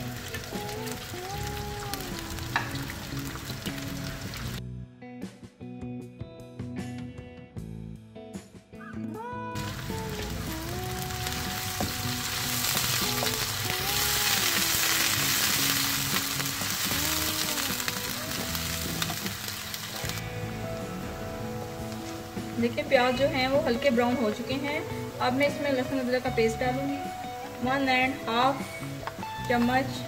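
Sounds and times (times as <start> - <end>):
onions sizzling in oil: 0.0 - 4.6, 9.6 - 27.9
music: 0.0 - 30.0.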